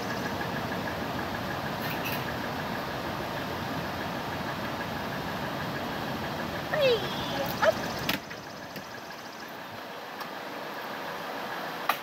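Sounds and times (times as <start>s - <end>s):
steady background hum: 0.0s - 11.9s.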